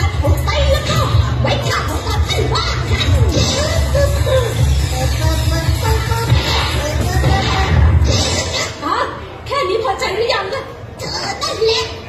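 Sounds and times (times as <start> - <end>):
high-pitched woman speaking: 0.0 - 4.5, 8.4 - 12.0.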